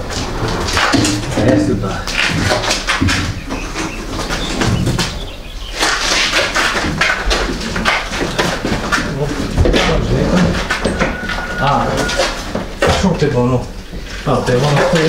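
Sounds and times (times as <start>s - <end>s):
refrigerator knocking and scraping: 0.0s - 15.0s.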